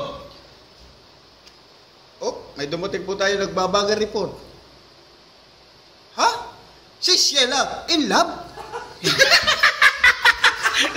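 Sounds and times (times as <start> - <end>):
low room hiss: 0.0 - 10.9.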